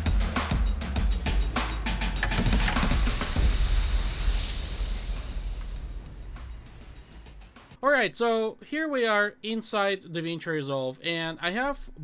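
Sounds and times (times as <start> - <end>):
intro sting music hits: 2.2 - 7.8
rushing whoosh: 3.2 - 7.7.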